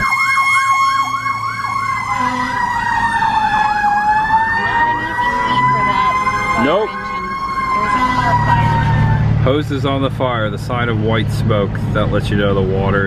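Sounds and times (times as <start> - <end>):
steady high siren tone: 0.0 - 9.6
fire truck siren yelping: 0.0 - 10.2.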